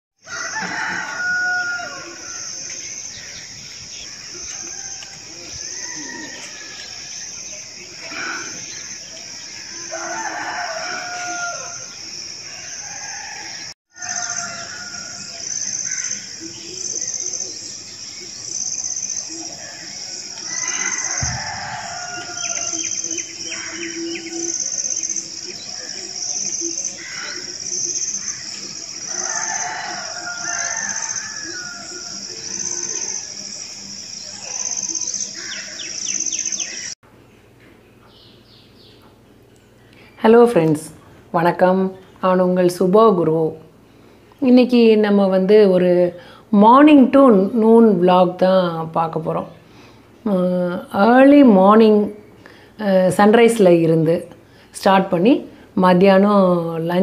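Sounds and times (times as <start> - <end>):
roosters crowing: 0.2 - 17.4, 18.2 - 37.0
pulsing insect chorus: 0.2 - 37.0
small birds chirping: 2.1 - 42.8.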